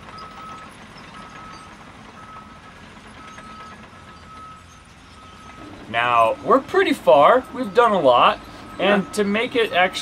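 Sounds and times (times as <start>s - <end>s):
faint steady rumble: 0.0s - 10.0s
truck reversing alarm beeping: 0.0s - 10.0s.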